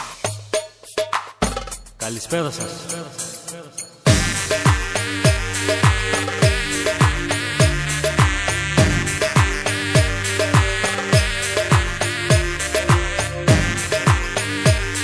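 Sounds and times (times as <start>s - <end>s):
electronic dance music: 2.0s - 15.0s
deep kick drum: 4.1s - 5.5s, 6.4s - 14.9s.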